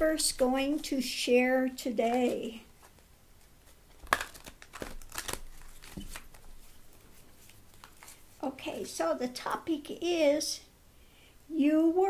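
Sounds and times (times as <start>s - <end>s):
cards snapping and rustling: 3.6s - 8.2s.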